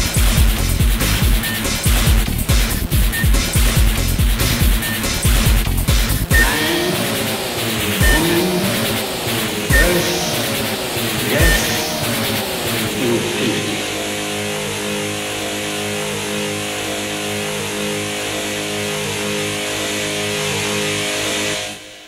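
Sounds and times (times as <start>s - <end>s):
distorted guitar drone: 0.0s - 22.0s.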